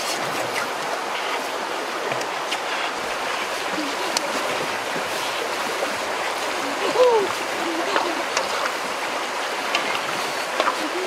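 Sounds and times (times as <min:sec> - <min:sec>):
water boiling with bubbling hiss: 0:00.0 - 0:11.0.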